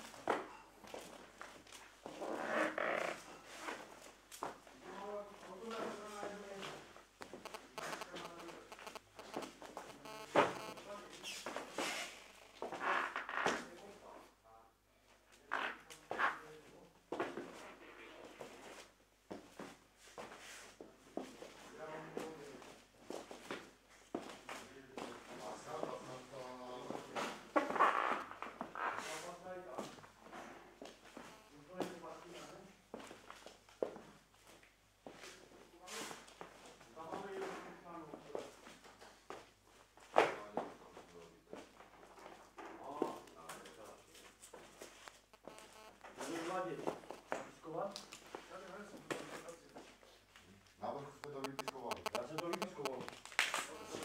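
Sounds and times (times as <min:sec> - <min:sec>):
indistinct voices talking: 0:07.2 - 0:11.1, 0:51.2 - 0:54.0.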